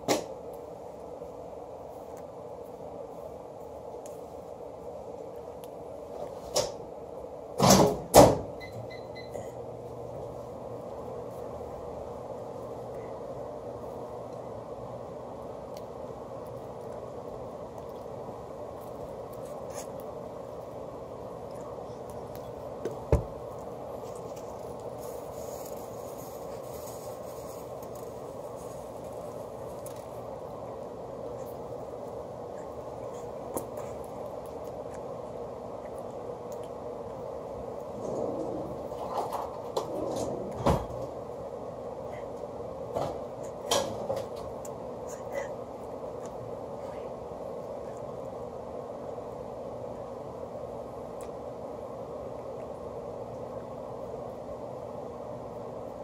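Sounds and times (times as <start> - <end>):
room noise hum: 0.0 - 56.0.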